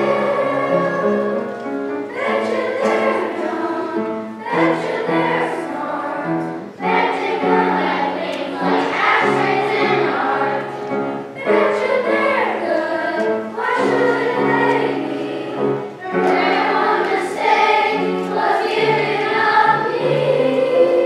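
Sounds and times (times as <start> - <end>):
children's choir singing: 0.0 - 21.0
piano accompaniment: 0.0 - 21.0.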